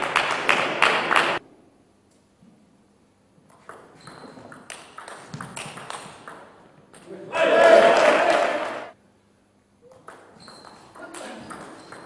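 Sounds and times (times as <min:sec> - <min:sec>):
loud crowd noise: 0:07.3 - 0:09.0.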